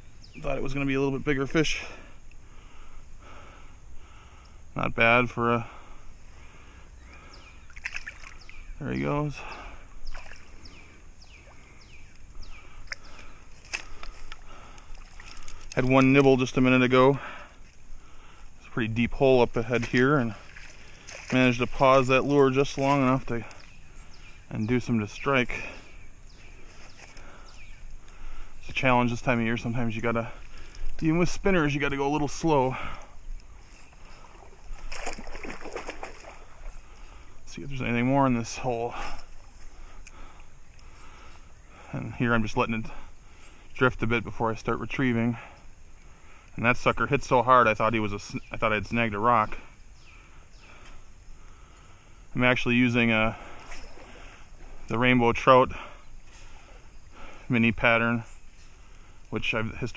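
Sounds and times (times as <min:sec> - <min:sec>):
creek flowing: 0:00.0 - 0:59.9
songbird whistling: 0:09.4 - 0:13.3.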